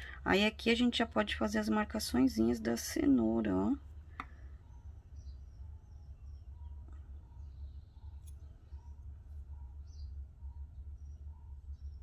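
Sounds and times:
steady low hum: 0.0s - 12.0s
faint bird-like chirps: 3.7s - 12.0s.

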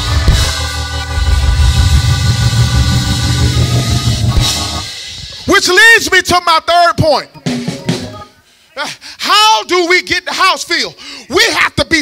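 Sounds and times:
bass and drum beat: 0.0s - 5.5s
live band music: 0.0s - 8.7s.

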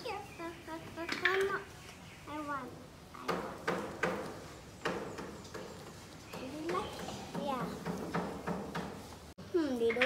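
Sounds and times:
children's voices: 0.0s - 3.9s, 6.3s - 8.2s, 9.4s - 10.0s.

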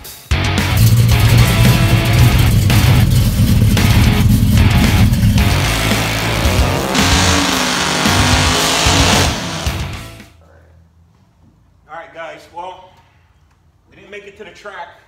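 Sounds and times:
heavy rock music: 0.0s - 10.3s
drag car engine revving: 0.6s - 10.2s
tyres spinning: 0.8s - 9.9s.

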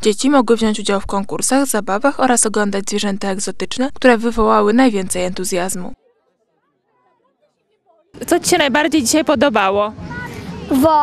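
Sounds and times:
faint crowd chattering: 4.0s - 11.0s.

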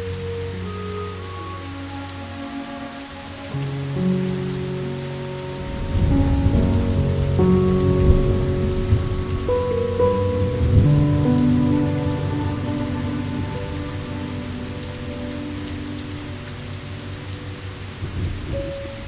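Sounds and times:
slow sustained music chords: 0.0s - 19.0s
steady rain: 0.0s - 19.0s
low rumble: 5.8s - 15.1s.

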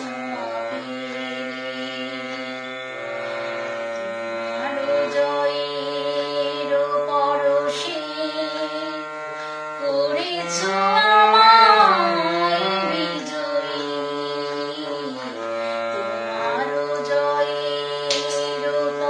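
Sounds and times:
woman singing: 0.0s - 2.8s, 4.6s - 9.2s, 9.8s - 19.0s
sustained instrumental accompaniment: 0.0s - 19.0s.

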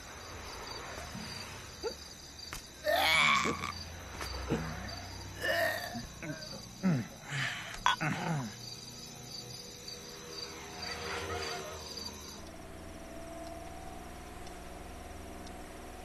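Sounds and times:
crickets chirping: 0.0s - 16.0s
low steady hum: 0.0s - 16.0s.

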